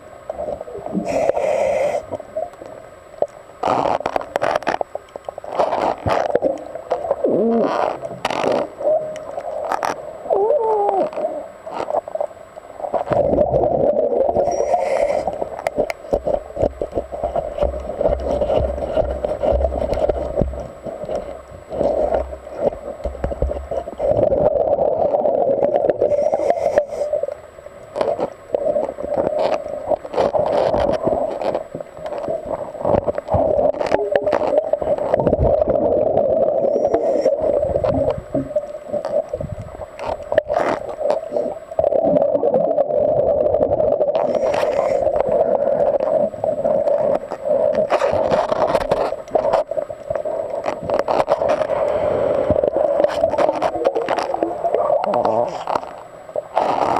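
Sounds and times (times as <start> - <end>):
underwater diver breathing bubbles: 0.8 - 2.4, 5.6 - 11.5, 13.0 - 27.4, 28.0 - 55.9.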